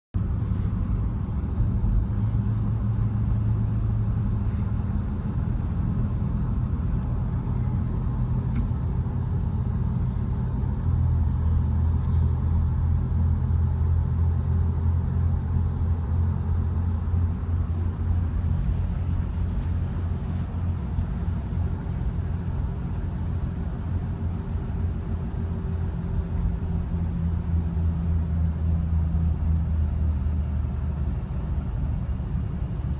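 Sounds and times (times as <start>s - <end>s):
truck engine and road rumble: 0.1s - 32.9s.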